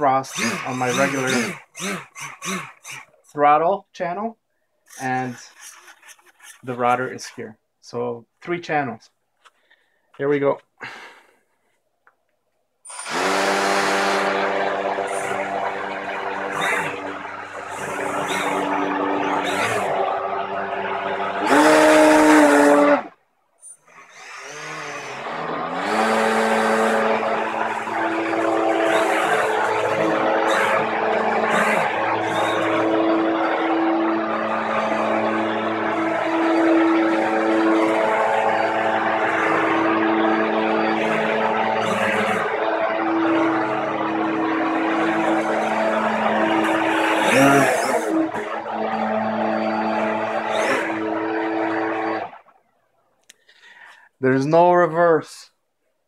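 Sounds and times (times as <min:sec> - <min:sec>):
hovercraft motors whining: 0:00.0 - 0:03.3, 0:04.9 - 0:07.0, 0:12.9 - 0:52.6.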